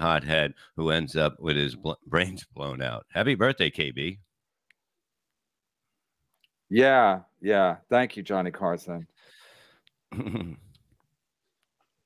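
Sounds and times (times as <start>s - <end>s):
man speaking: 0.0s - 4.3s, 6.7s - 9.2s.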